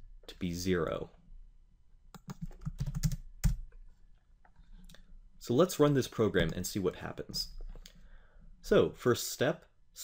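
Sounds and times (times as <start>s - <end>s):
computer keyboard keystrokes: 2.1s - 3.6s.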